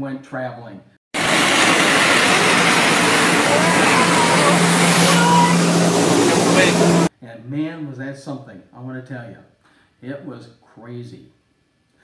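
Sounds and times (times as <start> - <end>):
water jetpack rushing: 1.2 - 7.1.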